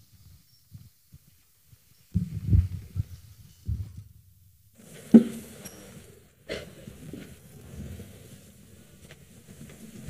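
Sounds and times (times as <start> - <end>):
congregation shuffling and thumping: 4.8 - 10.0.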